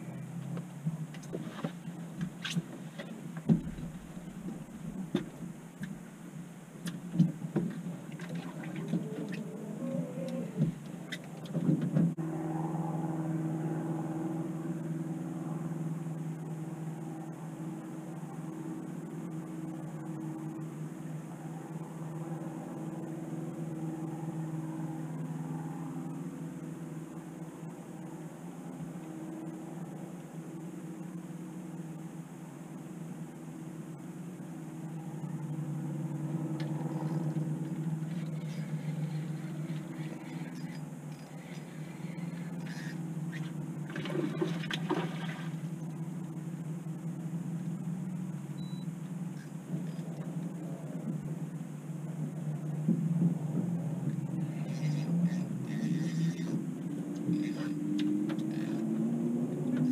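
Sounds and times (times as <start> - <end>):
boat motor humming: 0.0 - 59.9
knocks and clatter on a boat: 0.4 - 6.2, 6.8 - 9.5, 10.4 - 12.2, 43.4 - 45.7, 52.8 - 56.7.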